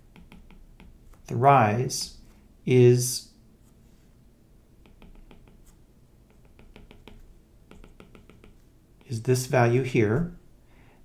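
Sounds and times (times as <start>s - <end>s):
stylus tapping on tablet: 0.0s - 1.3s, 4.8s - 9.2s.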